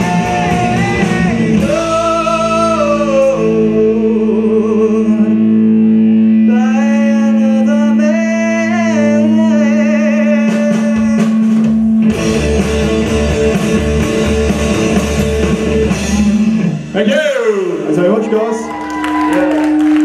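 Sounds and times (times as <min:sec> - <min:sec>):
drums: 0:00.0 - 0:20.0
live rock band playing: 0:00.0 - 0:20.0.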